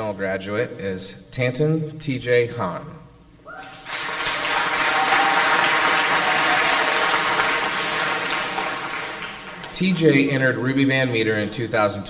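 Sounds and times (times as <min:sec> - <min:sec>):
audience applauding: 0:03.6 - 0:09.8.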